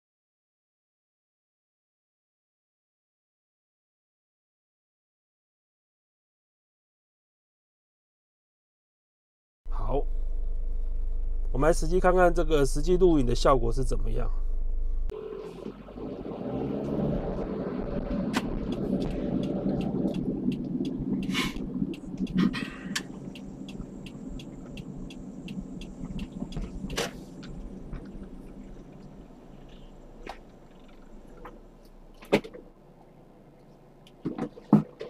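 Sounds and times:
car engine and road rumble: 9.7 - 35.0
sharp ticks: 18.3 - 28.2.

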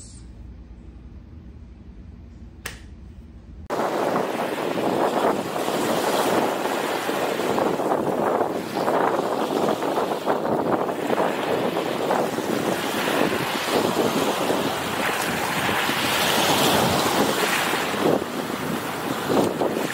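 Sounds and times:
small waves washing on beach: 3.7 - 19.9
wind rumble on microphone: 3.7 - 19.9.

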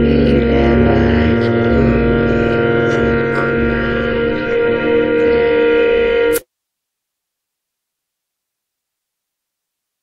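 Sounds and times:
low bass notes: 0.0 - 6.4
sustained drone music: 0.0 - 6.4.

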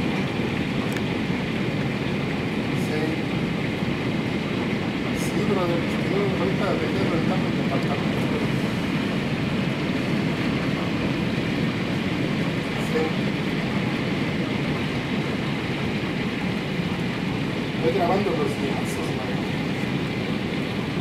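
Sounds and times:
heavy rain and hail: 0.0 - 21.0.

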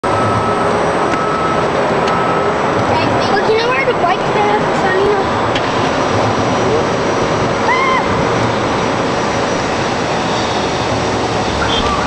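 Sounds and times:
loud rushing noise: 1.7 - 12.0.

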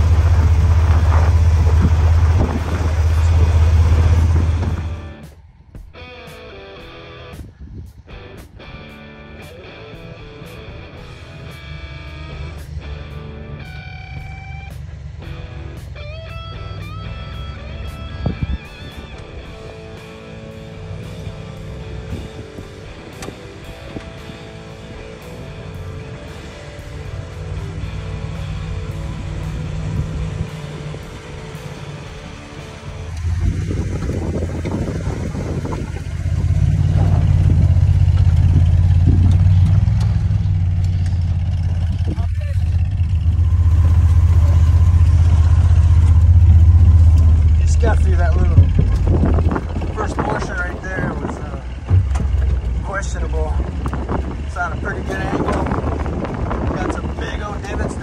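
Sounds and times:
jeep engine running low: 0.0 - 5.4, 9.6 - 58.0
guitar music: 0.0 - 58.0.

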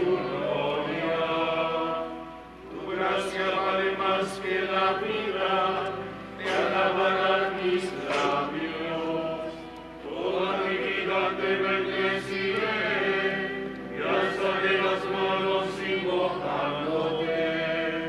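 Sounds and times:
voices singing a slow hymn: 0.0 - 18.0.

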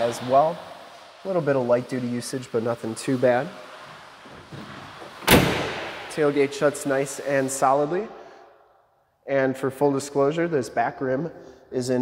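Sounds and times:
tailgate slamming shut: 4.4 - 6.1.

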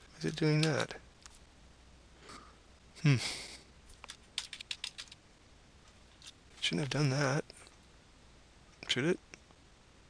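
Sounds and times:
computer keyboard key clicks: 4.0 - 5.2.

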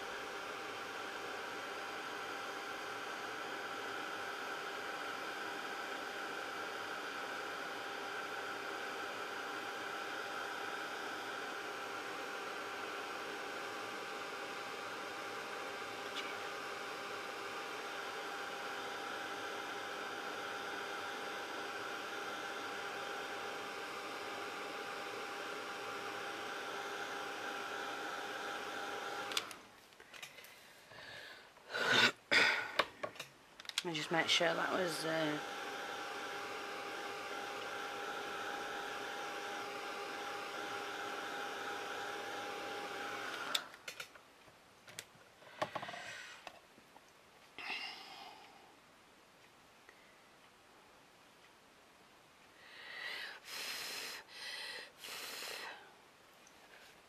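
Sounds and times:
heat tool blowing with whine: 34.0 - 43.7.

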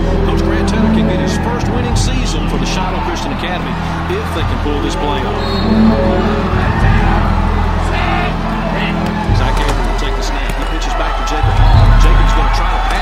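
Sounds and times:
dramatic orchestral music: 0.0 - 10.5
crowd voices: 0.0 - 13.0.

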